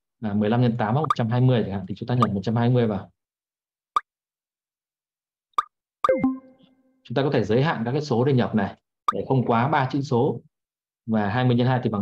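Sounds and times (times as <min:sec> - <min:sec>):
ringing tone: 0:06.1 - 0:06.7.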